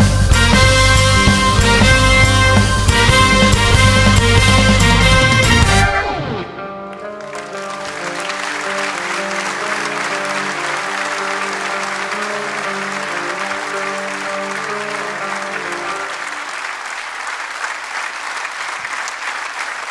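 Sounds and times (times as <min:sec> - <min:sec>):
music sustained notes: 0:00.0 - 0:16.6
audience applauding: 0:00.0 - 0:19.9.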